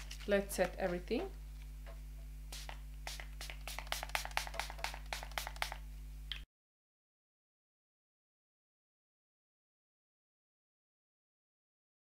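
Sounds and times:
spray bottle misting: 2.5 - 5.8.

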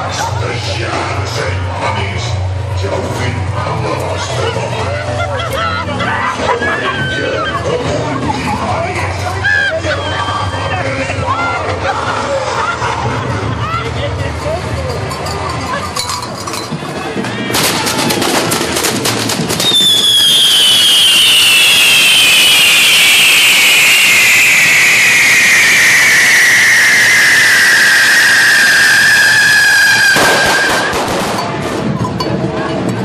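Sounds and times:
fireworks crackling: 16.8 - 32.2
firework whistle sliding down: 19.5 - 31.1.

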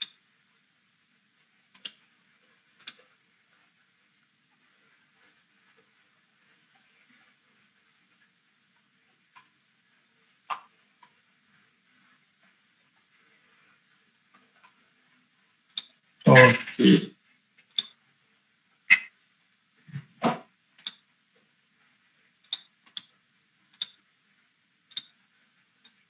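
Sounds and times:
faint room hiss: 0.0 - 26.0
tiny ticks: 1.7 - 2.0, 2.8 - 3.1, 15.7 - 15.9, 20.8 - 21.0, 22.4 - 23.1, 23.7 - 24.0, 24.9 - 25.2.

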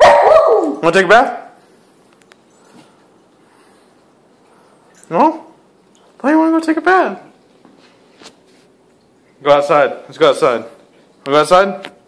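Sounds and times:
dog rustling on tile floor: 7.2 - 8.8.

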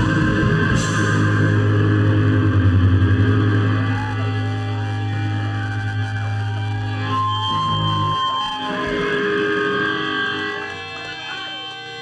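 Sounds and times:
electric guitars with feedback: 0.0 - 12.0.

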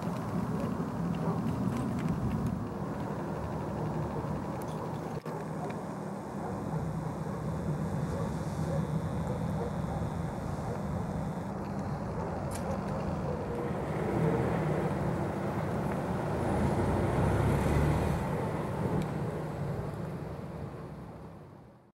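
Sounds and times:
distant road traffic hum: 0.0 - 21.9.

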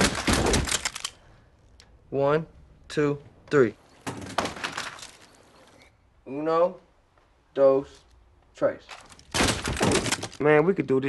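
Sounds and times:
guns clattering onto wooden floor: 4.0 - 5.3, 8.9 - 10.4.

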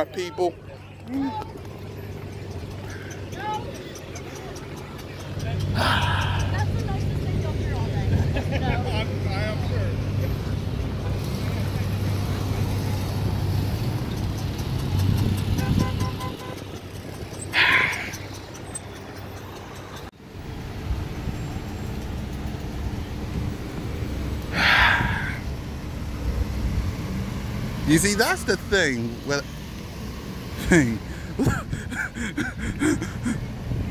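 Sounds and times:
cars driving past: 0.0 - 33.9.

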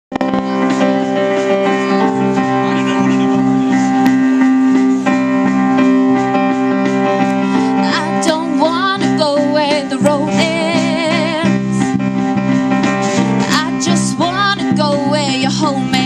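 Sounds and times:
electric guitars and keyboard chords: 0.1 - 16.0
melody line with wide vibrato: 0.1 - 16.0.

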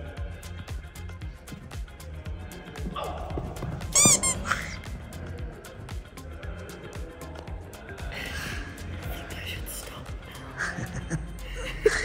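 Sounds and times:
background music with steady beat: 0.0 - 12.0
high-pitched squeak: 3.9 - 4.9.

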